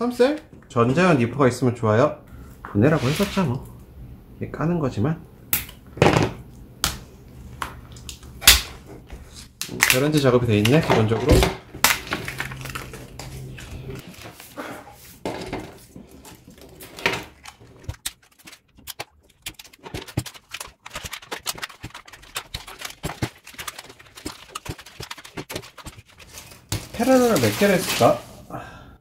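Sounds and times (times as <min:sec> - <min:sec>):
plastic wrap crackling and rustling: 0:09.3 - 0:28.5.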